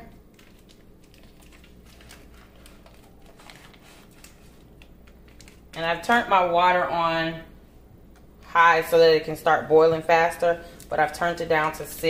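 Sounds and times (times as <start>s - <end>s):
low steady hum: 0.0s - 12.0s
paper wrapper crinkling: 0.1s - 5.8s.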